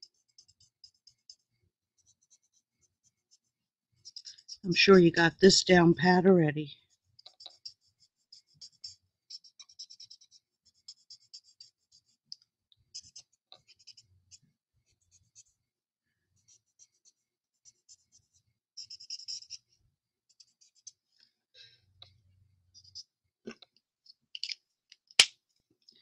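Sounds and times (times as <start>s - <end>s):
marker scratching on cardstock: 0.0s - 4.9s, 6.8s - 15.6s, 16.4s - 21.1s, 22.8s - 23.1s.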